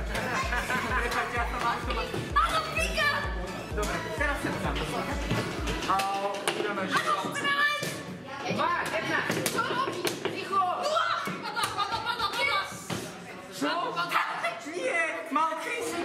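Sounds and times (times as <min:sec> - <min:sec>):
steady deep beat: 0:00.0 - 0:05.9
background music: 0:00.0 - 0:16.0.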